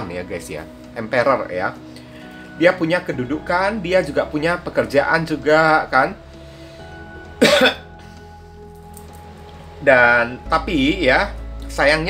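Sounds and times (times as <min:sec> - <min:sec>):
soft background music: 0:00.0 - 0:12.0
man coughing: 0:07.4 - 0:07.9.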